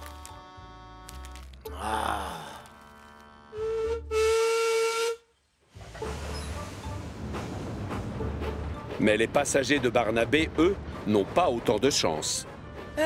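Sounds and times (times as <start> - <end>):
steam locomotive whistle: 3.5 - 5.3
train rumbling: 5.6 - 13.0.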